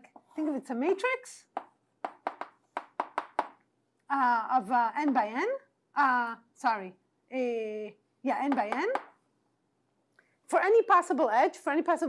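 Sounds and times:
chalk tapping on a blackboard: 1.6s - 3.6s.

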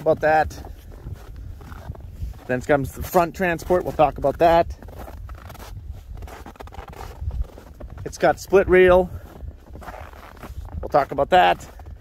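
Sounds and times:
footsteps in snow: 0.0s - 12.0s
wind rumble on microphone: 0.0s - 12.0s.

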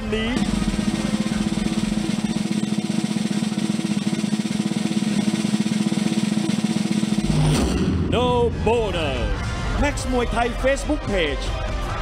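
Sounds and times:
snare drum roll: 0.4s - 8.4s
low sustained drone: 0.4s - 9.8s.

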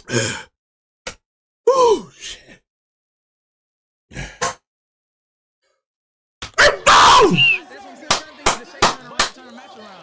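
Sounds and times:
faint voices: 7.2s - 10.0s
sharp hand claps: 8.0s - 10.0s.

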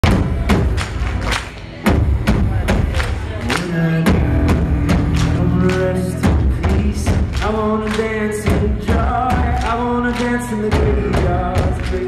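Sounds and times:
heavy drum hits: 0.0s - 0.8s
rock band playing: 0.0s - 12.0s.

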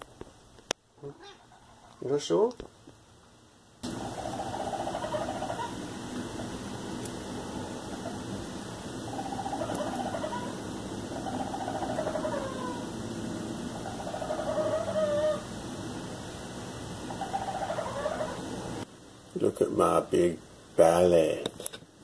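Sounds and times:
raccoon churring: 3.8s - 15.5s, 17.1s - 18.7s.

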